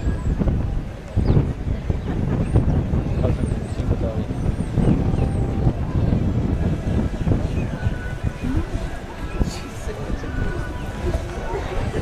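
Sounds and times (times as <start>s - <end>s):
faint voices talking: 0.0s - 12.0s
wind buffeting microphone: 0.0s - 12.0s.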